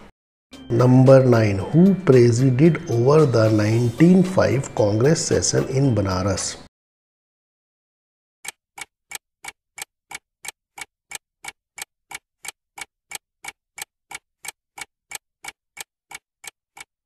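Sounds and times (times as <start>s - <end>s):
clock-style ticking: 8.5s - 16.9s.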